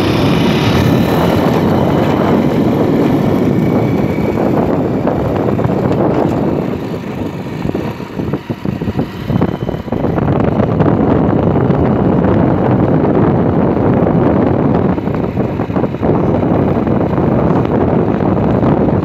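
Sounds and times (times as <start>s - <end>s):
small vehicle engine running: 0.0s - 19.0s
wind rushing over microphone: 0.0s - 19.0s.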